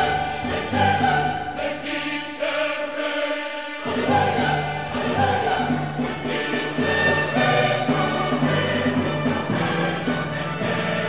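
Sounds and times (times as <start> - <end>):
orchestra playing: 0.0 - 2.0, 3.7 - 11.0
choir singing: 0.0 - 11.0.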